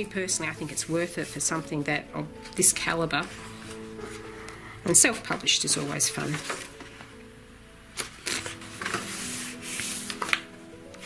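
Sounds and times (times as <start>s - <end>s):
paper pages rustling and rubbing: 2.4s - 7.1s, 8.0s - 11.0s.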